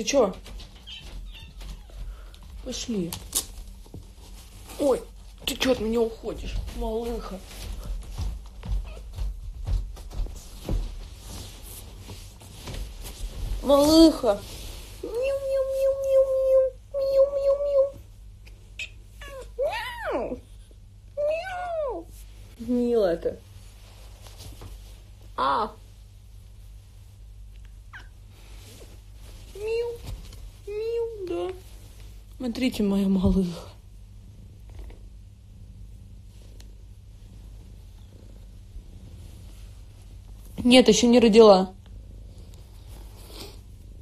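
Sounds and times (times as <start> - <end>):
cat purring: 0.0 - 19.6, 20.2 - 44.0
cat meowing: 0.8 - 2.0.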